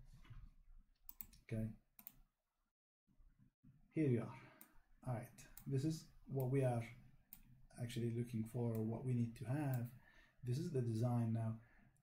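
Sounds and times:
computer mouse clicks: 1.1s - 1.4s, 2.0s - 2.2s, 9.7s - 9.9s.

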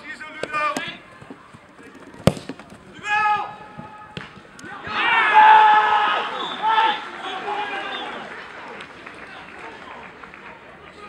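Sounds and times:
players shouting: 0.0s - 11.0s
football kicked hard: 2.2s - 2.7s.

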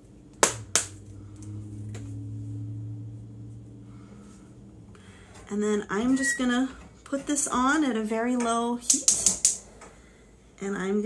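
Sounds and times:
steady low hum: 0.0s - 8.8s.

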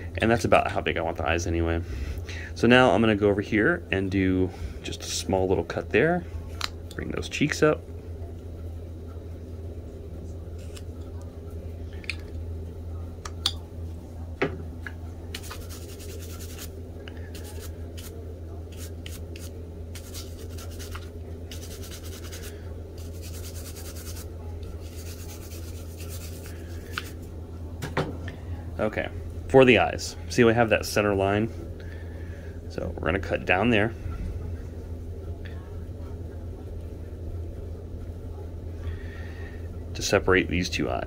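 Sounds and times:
steady low hum: 0.0s - 41.0s
scratchy strokes on wood: 15.4s - 16.7s, 18.7s - 27.0s.

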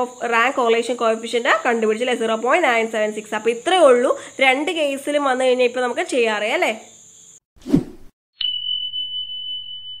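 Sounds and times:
high ringing tone: 8.4s - 10.0s.

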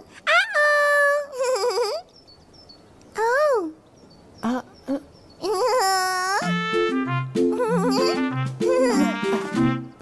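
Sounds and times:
high-pitched warbling vocal: 7.5s - 9.2s.

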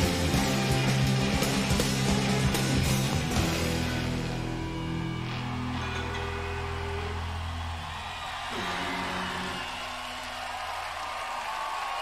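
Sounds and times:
rock band guitar and bass notes: 0.0s - 9.9s
crowd cheering and applause: 0.0s - 12.0s.

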